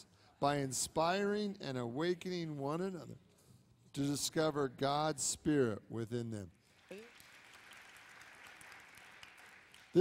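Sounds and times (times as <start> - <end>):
soft applause: 6.7 - 10.0.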